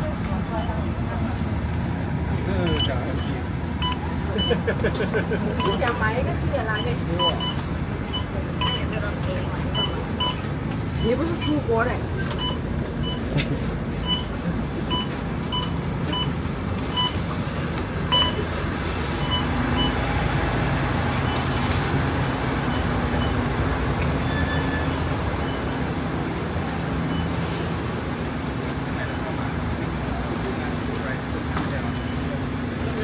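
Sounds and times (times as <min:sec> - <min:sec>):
bus engine rumble: 0:00.0 - 0:33.0
crowd noise: 0:00.0 - 0:33.0
short electronic beeps: 0:02.6 - 0:04.6, 0:06.7 - 0:08.9, 0:09.7 - 0:11.7, 0:12.4 - 0:13.3, 0:14.0 - 0:17.2, 0:18.1 - 0:18.5, 0:19.2 - 0:20.1.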